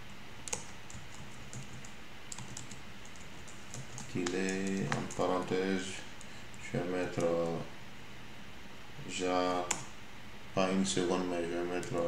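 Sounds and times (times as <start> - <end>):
computer keyboard typing: 0.4 - 5.5, 7.0 - 7.6, 11.8 - 12.0.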